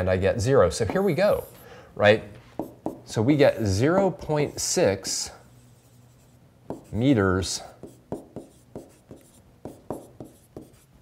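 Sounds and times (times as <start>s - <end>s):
stylus tapping and scratching tablet: 2.6s - 3.1s, 5.8s - 7.1s, 7.8s - 10.9s.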